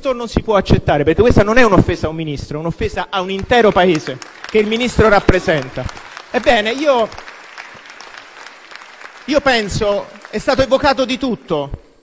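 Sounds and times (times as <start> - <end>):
person speaking: 2.8 - 7.2, 9.2 - 11.8
light clapping: 3.3 - 11.5.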